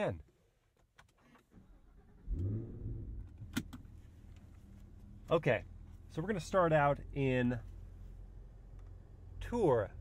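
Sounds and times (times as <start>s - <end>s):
car engine starting and idling: 0.7s - 10.0s.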